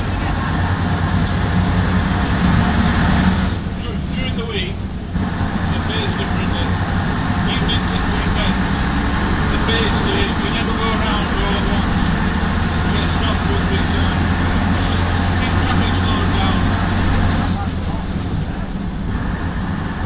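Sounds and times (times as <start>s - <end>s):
bus diesel engine running: 0.0s - 20.0s.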